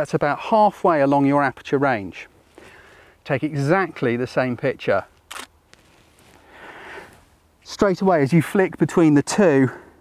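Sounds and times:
soft hiss: 0:01.1 - 0:10.0
camera shutter clatter: 0:05.3 - 0:05.5
camera shutter click: 0:05.3 - 0:05.5.

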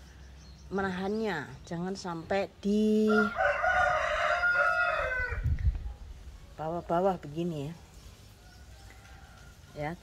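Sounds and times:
rooster crowing: 0:03.1 - 0:05.4.

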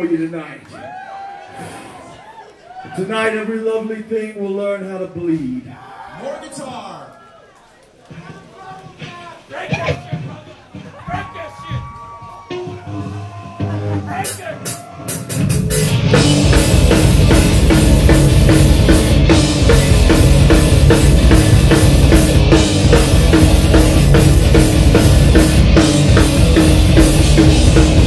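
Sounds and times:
heavy metal band playing live: 0:12.4 - 0:28.0.

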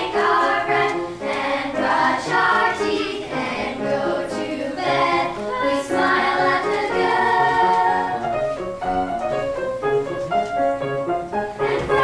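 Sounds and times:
girls choir singing: 0:00.0 - 0:08.6, 0:11.6 - 0:12.0
piano accompaniment: 0:00.0 - 0:12.0.

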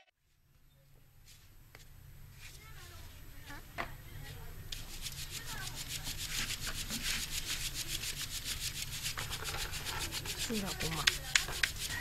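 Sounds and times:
flour sieve rasping: 0:04.2 - 0:12.0.

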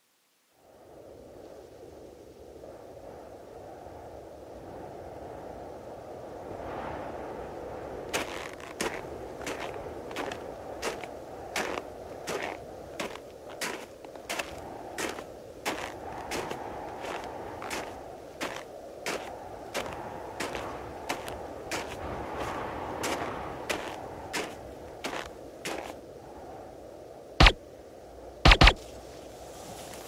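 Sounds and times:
sharp cracks: 0:27.4 - 0:27.6, 0:28.5 - 0:28.8.

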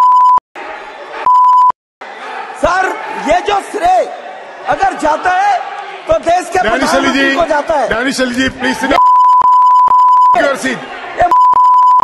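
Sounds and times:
censor bleeps: 0:00.0 - 0:00.4, 0:01.3 - 0:01.8, 0:09.0 - 0:10.4, 0:11.3 - 0:12.0.

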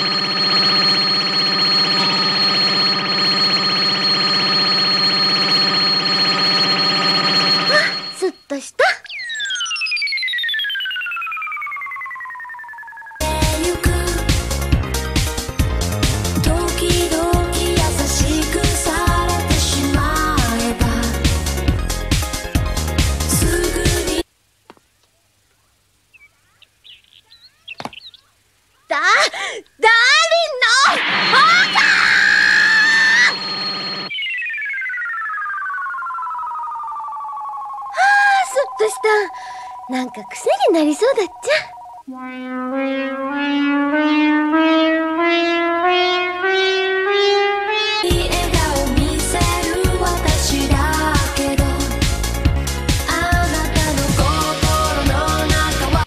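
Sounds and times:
descending cartoon whistle: 0:08.9 - 0:13.3, 0:30.7 - 0:48.1
electric shock crackling buzz: 0:42.0 - 0:48.1.

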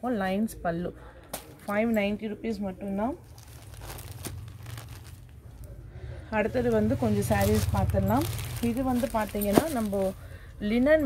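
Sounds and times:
fabric rustling: 0:01.3 - 0:11.0.

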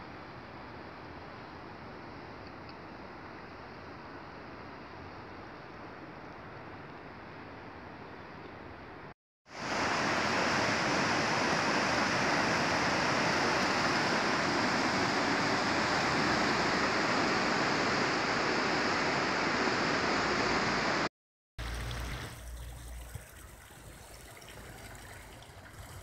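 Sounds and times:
flooding river rushing: 0:09.6 - 0:26.0.

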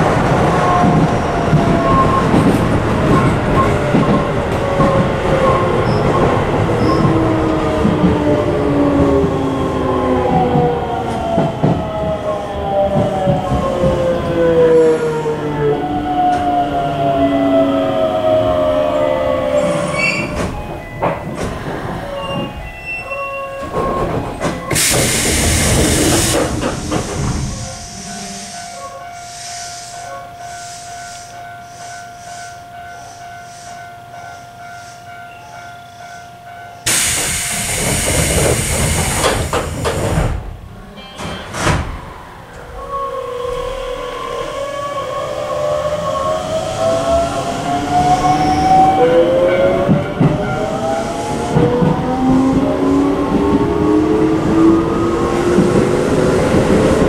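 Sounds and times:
loud air hiss: 0:24.7 - 0:31.3, 0:36.9 - 0:39.9.

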